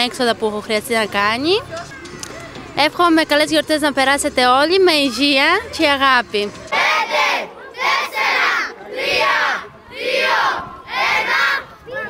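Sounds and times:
children shouting in unison: 6.8 - 12.0.

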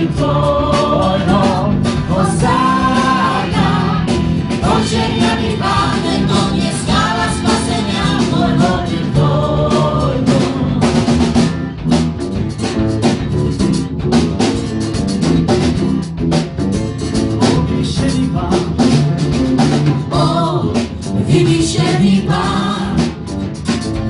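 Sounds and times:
people singing: 0.0 - 11.4, 17.4 - 19.2, 19.8 - 23.5
drum kit and percussion beat: 0.0 - 24.0
guitars: 0.0 - 24.0.

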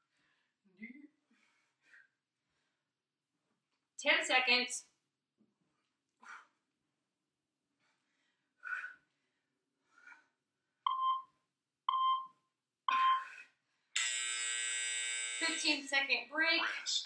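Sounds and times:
short timer beeps: 11.9 - 12.3, 12.9 - 13.3
long buzzer tone: 14.0 - 15.8.

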